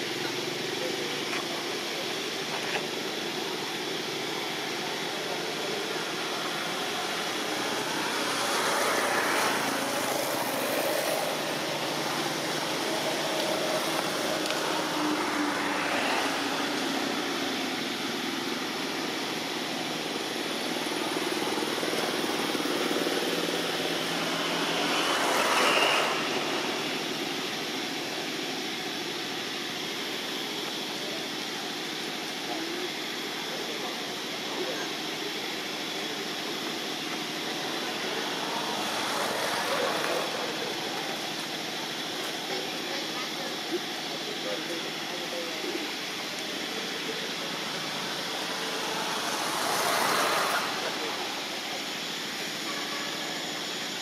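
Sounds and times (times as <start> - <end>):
faint indistinct voices: 0.0 - 54.0
outdoor background noise: 0.0 - 54.0.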